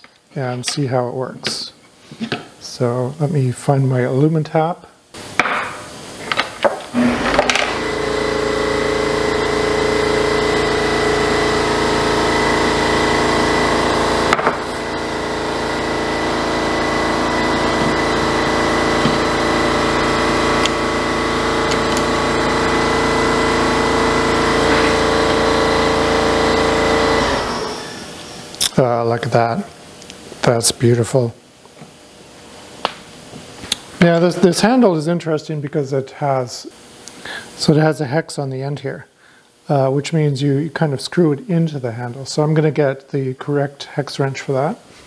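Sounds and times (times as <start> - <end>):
machine drone: 6.9 - 28.7.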